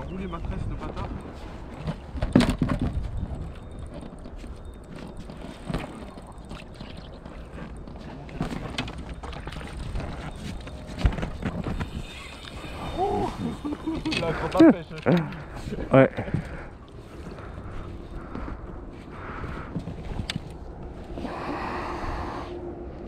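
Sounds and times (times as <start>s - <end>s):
wind rumble on microphone: 0.0s - 14.3s, 15.4s - 23.0s.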